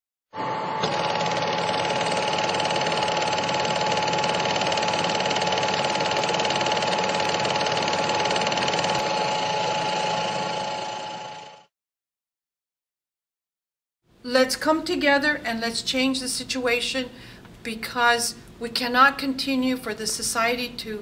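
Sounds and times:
constant high whine: 0.6 - 11.7
rapid mechanical clatter: 0.8 - 11.6.

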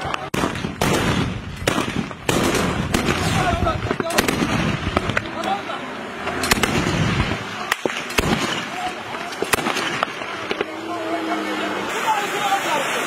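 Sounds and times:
distant gunshots echoing: 0.0 - 5.6, 6.2 - 10.8.

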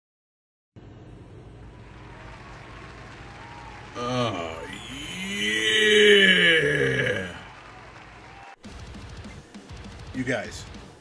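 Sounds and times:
man's drawn-out exclamation: 3.9 - 7.6.

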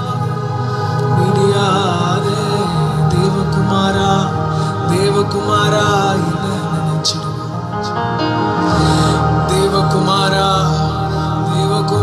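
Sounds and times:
man singing worship song: 0.0 - 12.0
sustained instrumental backing: 0.0 - 12.0.

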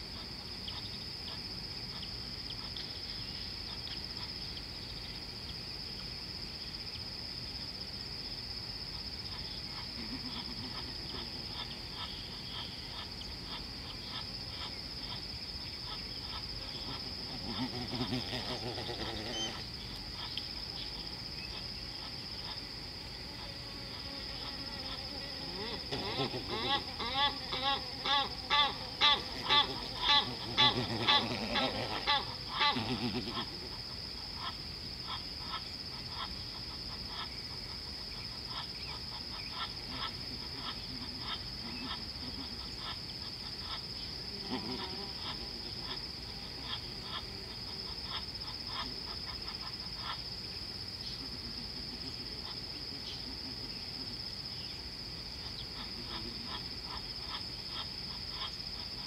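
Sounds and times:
insects droning: 0.0 - 59.0
animal rhythmic calls: 9.3 - 20.4, 23.4 - 33.8.

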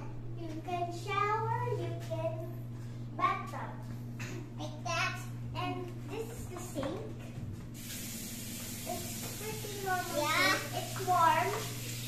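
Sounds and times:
water running into sink: 7.8 - 12.0.

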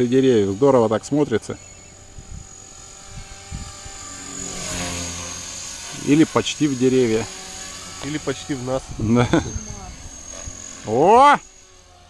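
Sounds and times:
model helicopter rotor whining: 0.0 - 12.0.

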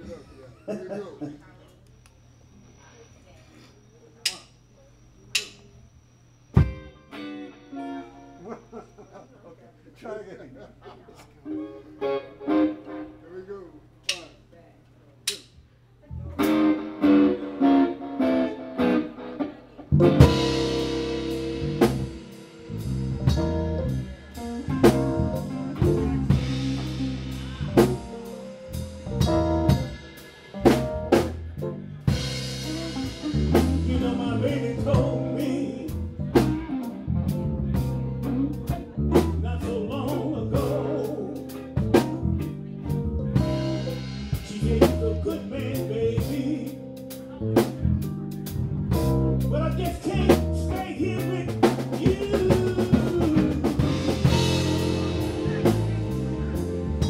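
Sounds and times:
electric guitar notes: 6.4 - 9.2, 11.4 - 13.5, 16.1 - 57.0
live rock band playing: 6.6 - 9.1, 11.5 - 13.1, 16.3 - 57.0.

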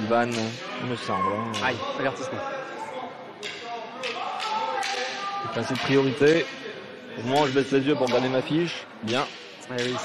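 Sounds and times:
indistinct echoing voices: 0.0 - 10.0.

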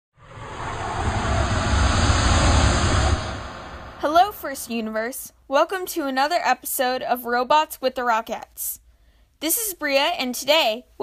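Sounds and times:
rocket launch rushing rumble: 0.2 - 5.0.

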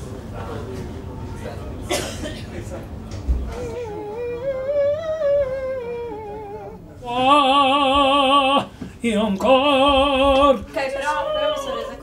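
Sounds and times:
person vocalizing with vibrato: 3.6 - 8.7.

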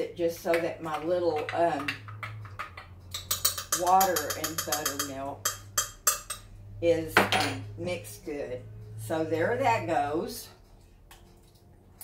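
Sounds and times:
spoon clinking against glass: 3.1 - 6.4.

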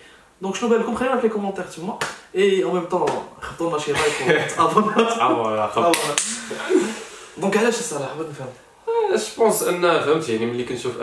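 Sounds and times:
hand clap: 2.0 - 2.2, 3.0 - 3.3, 5.8 - 6.5
man talking and laughing: 3.4 - 7.6.

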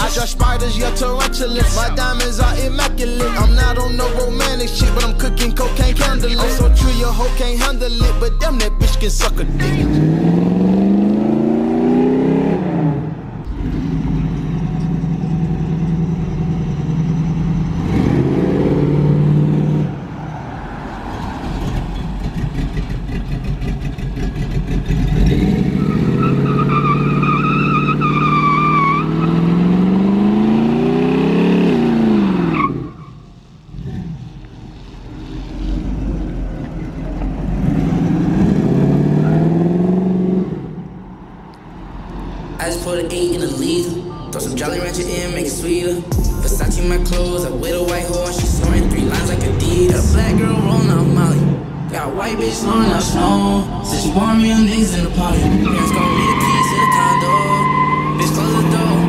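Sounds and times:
car engine revving: 0.0 - 43.8, 44.5 - 59.0
tyre squeal: 25.0 - 29.6, 52.9 - 59.0.

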